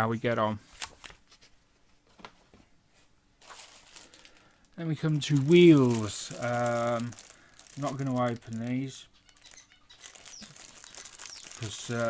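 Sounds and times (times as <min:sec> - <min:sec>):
plastic bag crinkling: 0:03.4 - 0:12.0.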